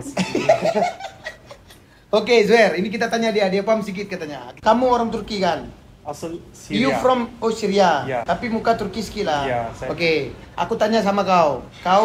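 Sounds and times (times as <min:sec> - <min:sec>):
people laughing: 0:00.2 - 0:01.8.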